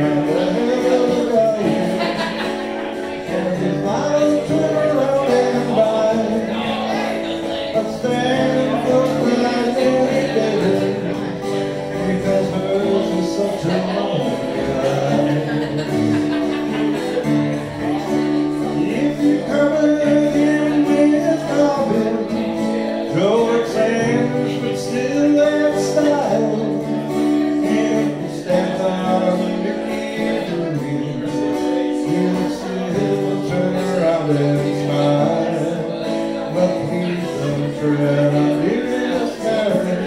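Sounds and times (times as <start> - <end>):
acoustic guitar: 0.0 - 40.0
man singing folk song: 0.0 - 40.0.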